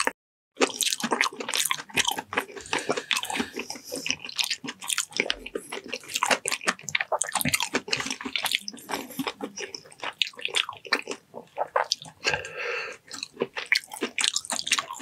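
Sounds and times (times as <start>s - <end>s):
wet chewing and biting: 0.0s - 15.0s
sticky mouth smacks and clicks: 13.1s - 15.0s.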